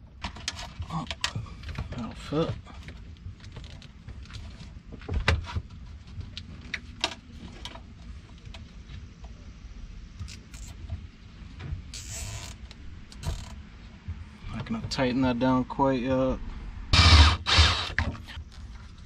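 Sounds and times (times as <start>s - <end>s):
zip tie handling clicks and scraping: 11.9s - 13.5s.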